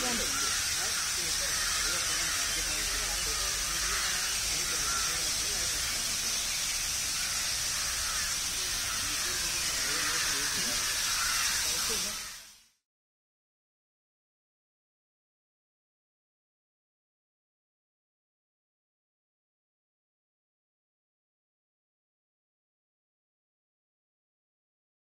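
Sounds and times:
people talking faintly: 0:00.0 - 0:06.6
fountain water spraying and splashing: 0:00.0 - 0:12.6.

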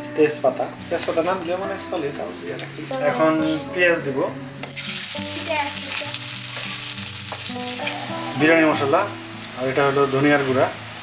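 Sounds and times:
onions sizzling in hot oil: 0:04.4 - 0:11.0.

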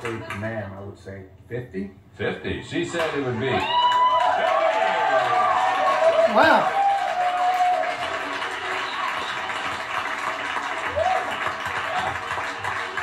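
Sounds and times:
audience applauding and cheering: 0:02.8 - 0:13.0.

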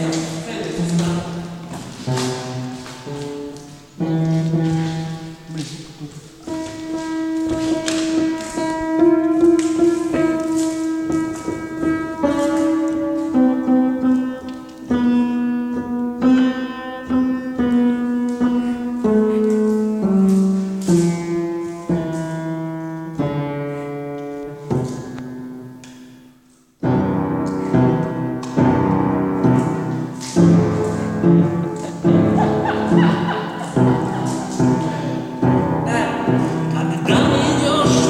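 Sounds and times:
piano playing slow chords: 0:00.0 - 0:38.0.

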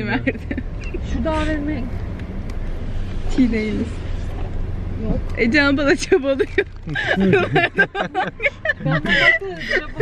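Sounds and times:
people talking and laughing: 0:00.0 - 0:01.8, 0:06.0 - 0:10.0
low car rumble: 0:00.0 - 0:10.0.

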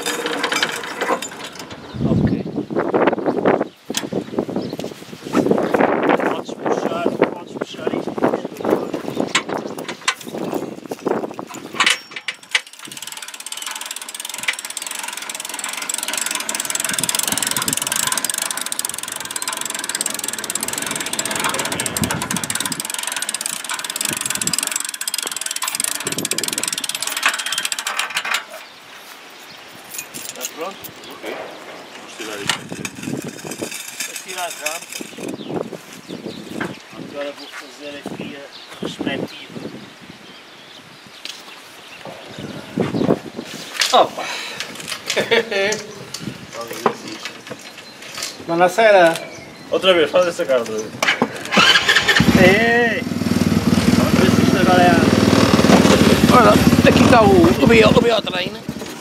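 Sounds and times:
irregular clicks and knocks: 0:00.0 - 0:01.9, 0:09.2 - 0:28.6
motorized rail dresine rattle: 0:00.0 - 0:02.2, 0:11.0 - 0:28.8, 0:51.4 - 0:58.2.

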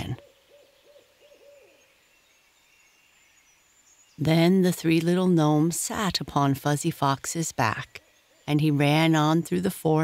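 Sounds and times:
owl hooting: 0:00.0 - 0:01.9.

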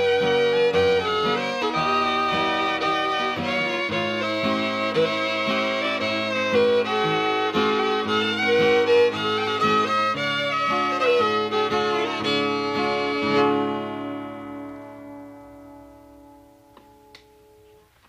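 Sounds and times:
fiddle melody: 0:00.0 - 0:17.8
acoustic guitar strumming: 0:00.0 - 0:17.9.

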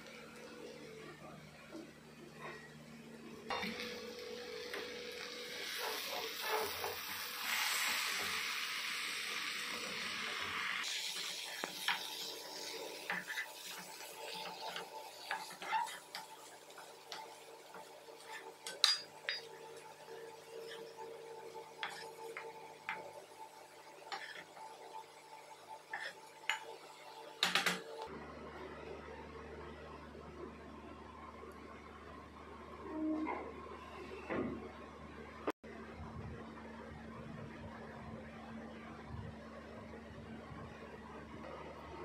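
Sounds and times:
frying sizzle: 0:03.5 - 0:28.1
metal spatula scraping pan: 0:11.6 - 0:16.4.

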